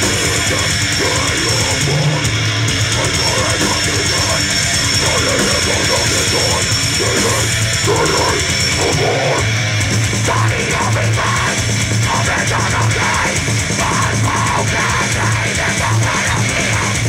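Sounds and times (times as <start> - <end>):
bass guitar: 0.0 - 17.0
distorted electric guitar: 0.0 - 17.0
drum kit: 0.0 - 17.0.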